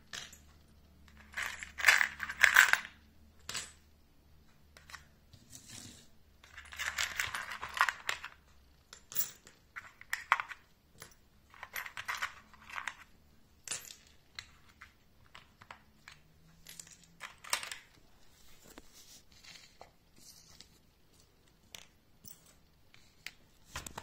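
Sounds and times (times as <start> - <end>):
metal parts clinking: 0.1 - 3.8, 6.4 - 18.0.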